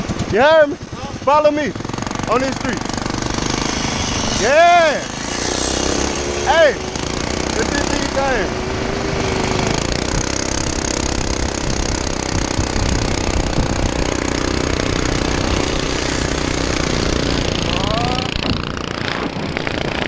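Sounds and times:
small engine buzzing: 0.0 - 20.0
wind noise on microphone: 8.7 - 20.0.

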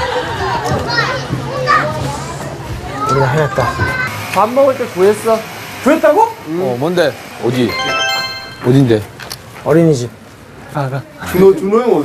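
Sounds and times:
children shouting and playing: 0.0 - 4.2
background music: 7.7 - 9.0.

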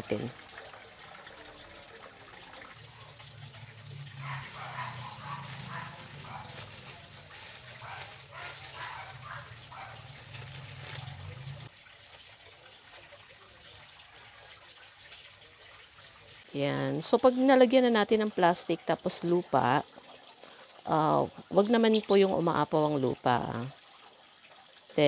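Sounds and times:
plastic bag rustling: 4.0 - 12.2.

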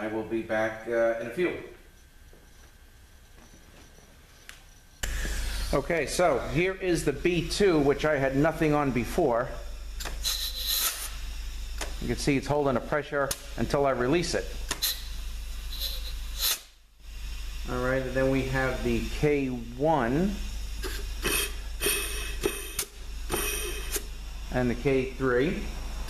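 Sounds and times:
compressed air hissing and whistling: 5.0 - 12.4, 13.8 - 25.7
sharp click: 13.2 - 13.5.

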